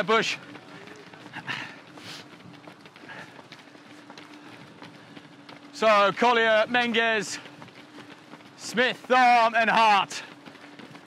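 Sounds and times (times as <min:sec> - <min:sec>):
runners' footsteps on tarmac: 0:00.0 - 0:11.0.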